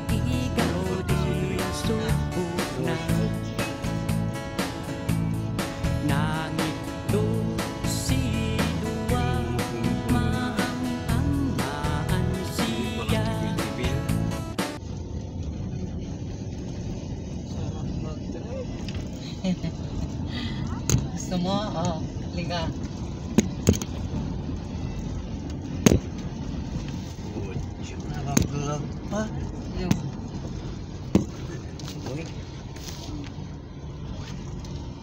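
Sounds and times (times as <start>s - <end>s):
vehicle road rumble: 0.0s - 35.0s.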